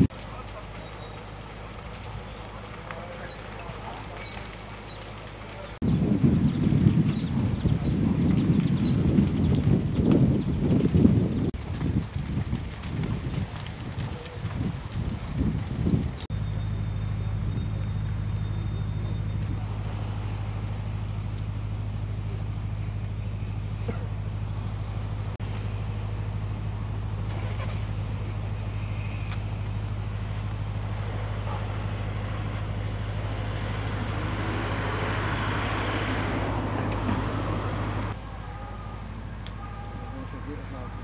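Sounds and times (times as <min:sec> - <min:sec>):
wind buffeting microphone: 0:03.3 - 0:16.3
diesel truck engine idling: 0:16.4 - 0:41.0.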